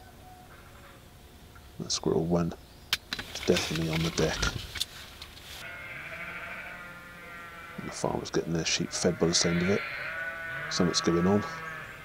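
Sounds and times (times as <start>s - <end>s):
sheep bleating: 5.6s - 12.0s.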